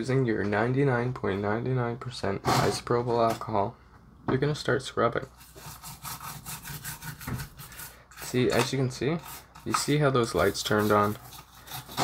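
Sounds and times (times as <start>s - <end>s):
brush scrubbing circuit board: 5.4s - 12.0s.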